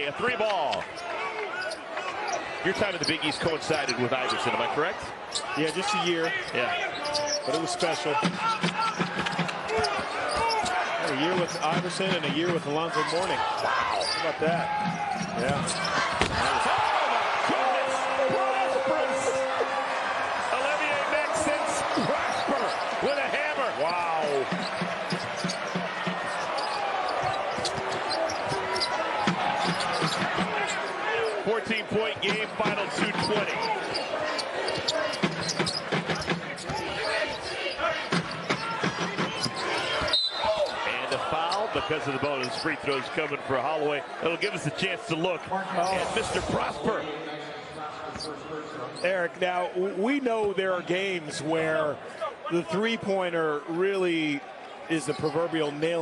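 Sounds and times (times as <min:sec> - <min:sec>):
arena crowd noise: 0:00.0 - 0:56.0
sneakers squeaking on floor: 0:05.2 - 0:16.9, 0:21.6 - 0:43.2.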